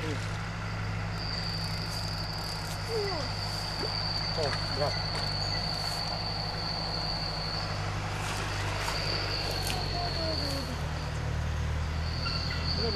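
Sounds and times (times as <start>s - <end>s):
insects chirring: 0.0s - 12.9s.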